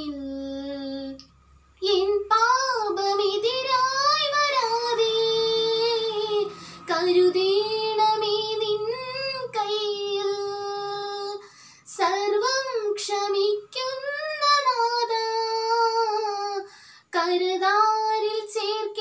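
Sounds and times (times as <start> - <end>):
young woman singing: 0.0 - 19.0.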